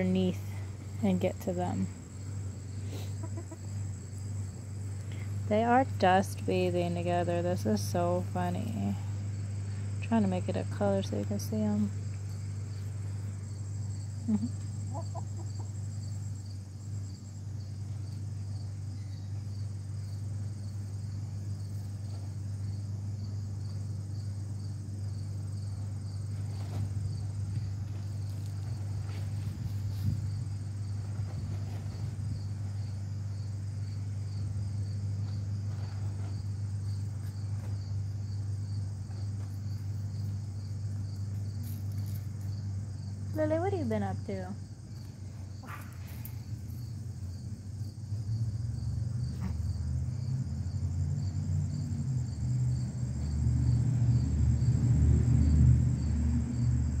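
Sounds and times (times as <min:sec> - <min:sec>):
insects chirring: 0:00.0 - 0:57.0
steady low hum: 0:00.0 - 0:57.0.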